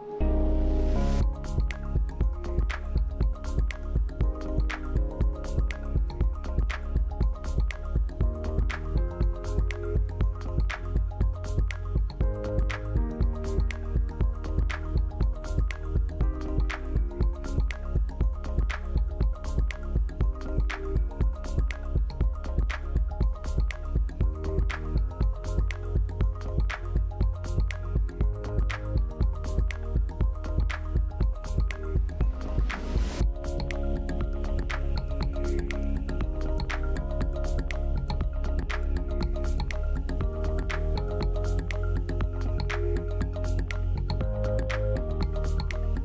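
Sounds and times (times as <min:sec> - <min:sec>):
background music with heavy bass: 0:00.0 - 0:46.0.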